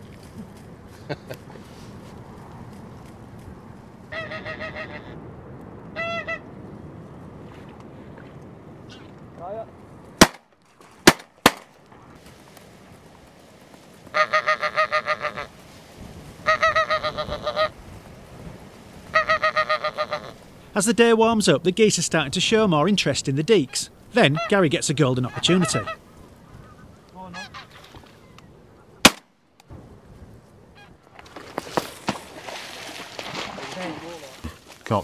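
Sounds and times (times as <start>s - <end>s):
goose call rapid honks: 4.1s - 5.2s, 6.0s - 6.4s, 14.1s - 15.5s, 16.4s - 17.7s, 19.1s - 20.4s, 23.6s - 24.6s, 25.2s - 26.0s, 27.2s - 27.8s.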